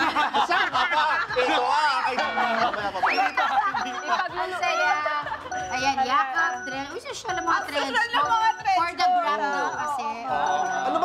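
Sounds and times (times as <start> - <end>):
people laughing: 0.0 - 5.6
people talking: 1.5 - 11.0.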